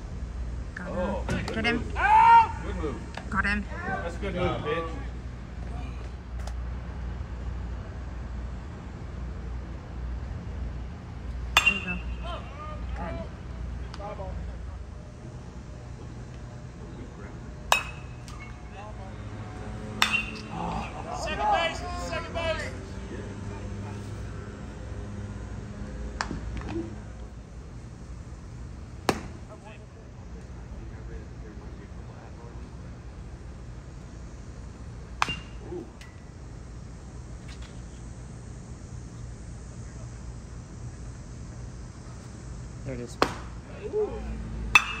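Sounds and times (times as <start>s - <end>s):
steady low rumble: 0.0s - 2.0s
voices shouting: 0.8s - 6.1s, 11.6s - 14.9s, 17.7s - 24.3s, 43.6s - 45.0s
bat ping: 11.5s - 12.4s, 17.7s - 18.6s, 19.9s - 20.6s, 29.1s - 29.3s, 35.2s - 36.2s, 44.7s - 45.0s
sharp crack: 19.9s - 20.6s, 29.0s - 29.4s.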